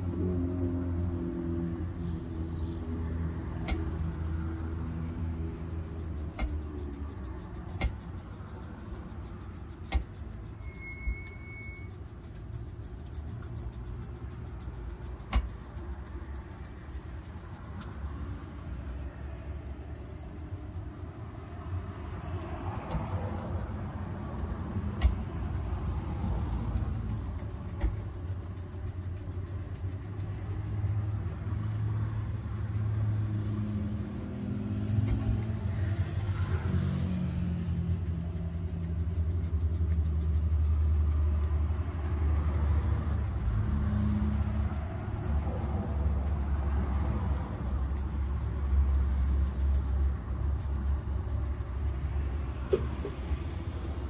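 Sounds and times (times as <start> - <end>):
road traffic rumble: 0.0 - 54.0
shoe brush scratching leather: 0.0 - 54.0
vehicle engine: 0.0 - 54.0.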